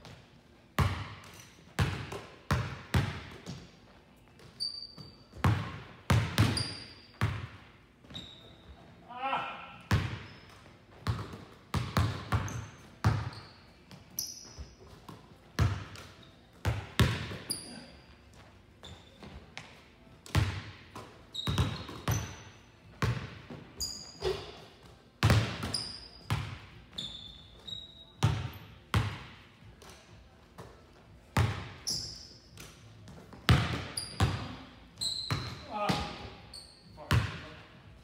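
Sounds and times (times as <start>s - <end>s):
sneaker squeaks: 0.9s - 2.2s, 3.2s - 7.4s, 8.0s - 9.0s, 9.9s - 19.8s, 21.0s - 28.8s, 31.5s - 37.4s
basketball bouncing on hardwood floor: 5.4s - 7.5s, 9.9s - 10.4s, 11.0s - 13.4s, 14.9s - 17.4s, 20.3s - 22.3s, 23.0s - 23.6s, 25.2s - 26.7s, 28.2s - 29.4s, 33.1s - 34.6s.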